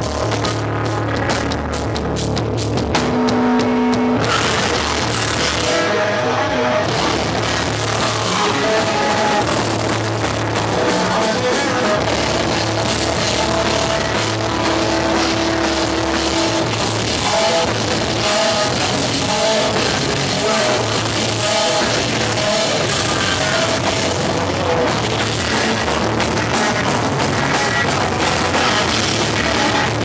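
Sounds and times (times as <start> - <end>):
hardcore band playing live: 0.0 - 30.0
vocalist singing: 3.4 - 30.0.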